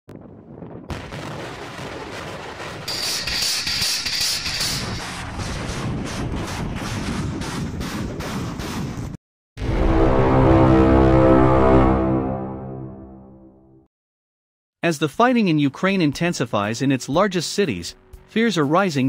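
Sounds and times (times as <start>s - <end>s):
rocket rumbling roar: 0.1s - 8.0s
sharp blasts: 1.2s - 8.8s
music: 9.6s - 13.8s, 17.1s - 19.0s.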